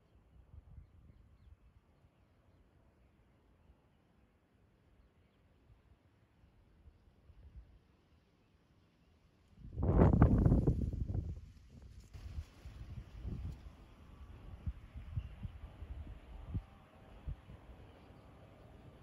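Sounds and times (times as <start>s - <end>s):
wind buffeting microphone: 9.7s - 16.6s.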